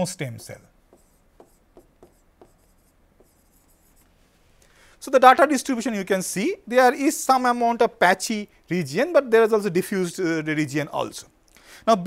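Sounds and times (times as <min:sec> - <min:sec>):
stylus tapping on display: 0:00.9 - 0:03.5.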